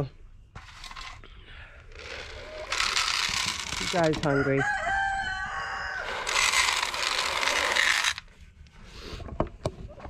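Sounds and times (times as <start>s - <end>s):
feed pellets rattling into metal trough: 2.0s - 4.3s, 6.1s - 8.2s.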